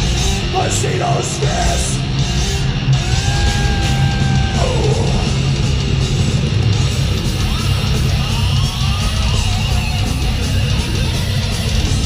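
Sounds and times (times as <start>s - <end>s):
distorted electric guitars: 0.0s - 12.0s
drums: 0.0s - 12.0s
live death metal music: 0.0s - 12.0s.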